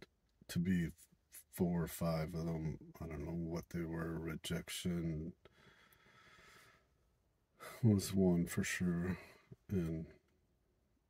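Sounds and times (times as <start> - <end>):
man's voice: 0.5 - 5.3, 7.7 - 10.1.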